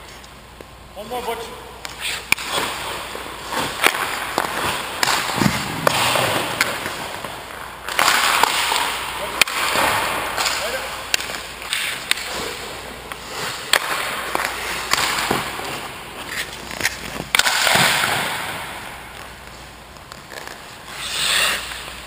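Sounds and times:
skate blades scraping ice: 1.8 - 22.0
stick and puck clacks: 1.8 - 22.0.

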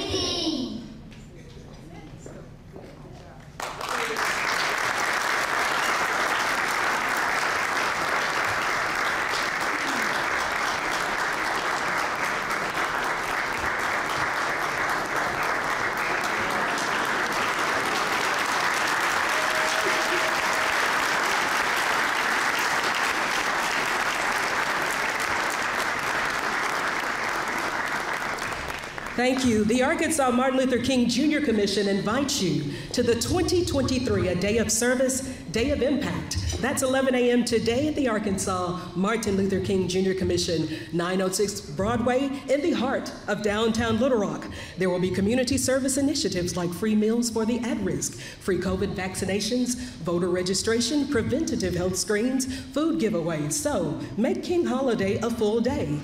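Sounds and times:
audience applauding: 3.6 - 29.2.

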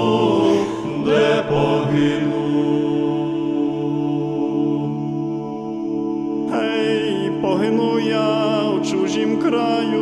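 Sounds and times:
person singing folk song: 6.4 - 10.0.

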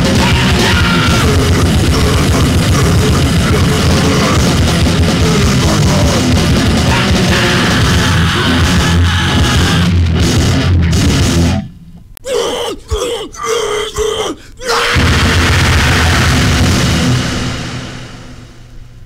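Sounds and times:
hardcore punk with distorted guitars: 0.0 - 18.7.

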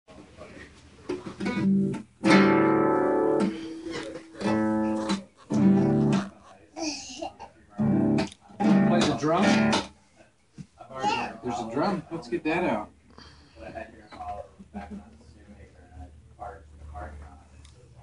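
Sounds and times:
acoustic guitar strumming: 1.4 - 6.4, 7.8 - 9.9.

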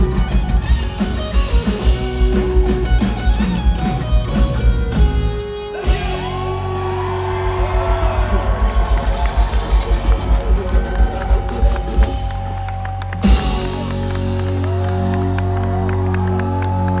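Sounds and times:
drum beat: 0.0 - 14.7
crowd cheering: 5.0 - 17.0.

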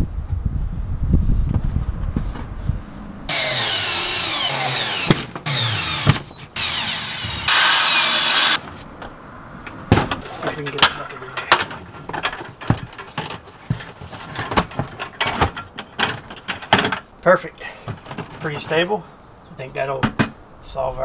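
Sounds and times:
cordless drill whining: 3.3 - 8.6.

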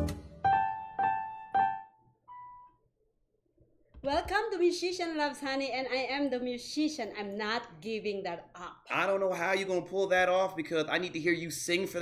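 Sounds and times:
piano note: 0.0 - 2.7.

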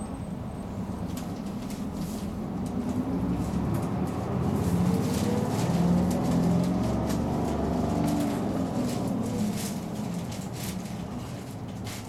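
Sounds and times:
bus diesel engine: 0.0 - 12.0.

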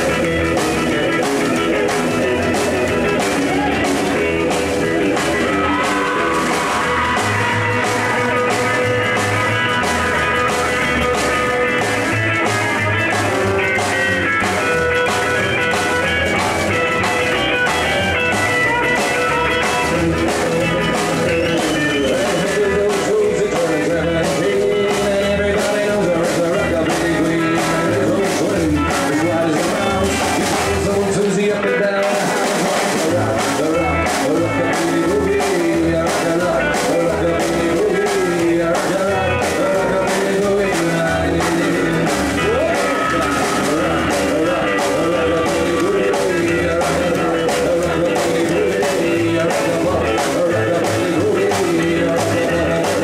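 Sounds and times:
lead electric guitar: 0.0 - 53.0
steady drum beat: 0.0 - 53.0
walking bass line: 0.0 - 53.0.

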